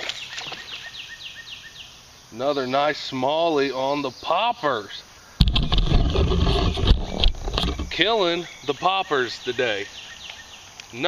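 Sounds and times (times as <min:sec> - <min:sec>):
camera handling rumble: 0:05.4 - 0:08.0.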